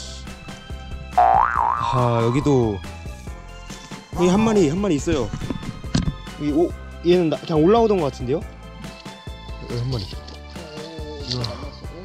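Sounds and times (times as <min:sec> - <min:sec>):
background music: 0:00.0 - 0:12.0
cartoon boing sound effect: 0:01.2 - 0:01.9.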